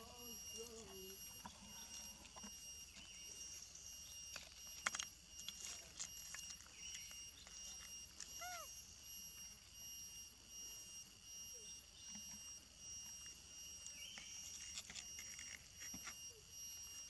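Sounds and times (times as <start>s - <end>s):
steady high-pitched whine: 0.0s - 17.0s.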